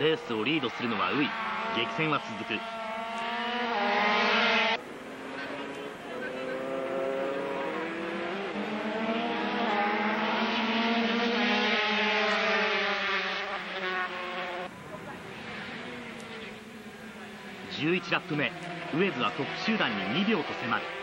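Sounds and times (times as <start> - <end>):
racing motorcycles at high revs: 0.9 - 21.0.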